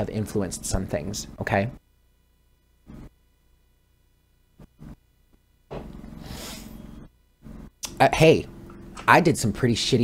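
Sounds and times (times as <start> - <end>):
short breath: 6.2 - 6.8.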